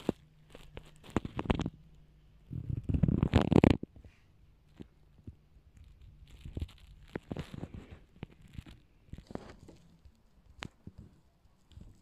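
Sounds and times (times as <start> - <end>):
crackling handling noise: 0.0 - 12.0.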